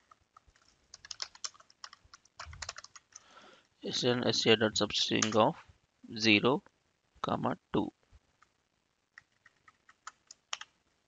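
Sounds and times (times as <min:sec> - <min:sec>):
typing on computer keyboard: 0:00.0 - 0:03.3, 0:09.2 - 0:10.7.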